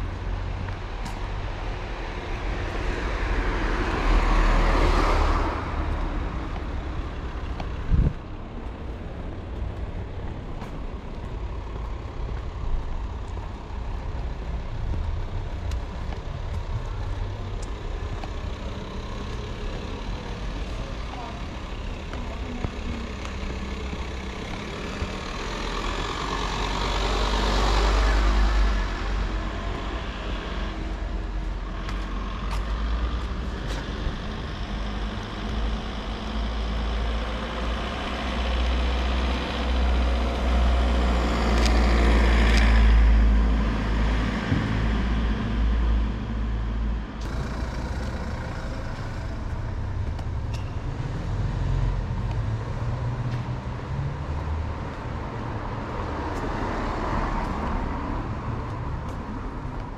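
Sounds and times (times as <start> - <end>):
low traffic rumble: 0.0 - 59.9
vehicles passing: 0.0 - 59.9.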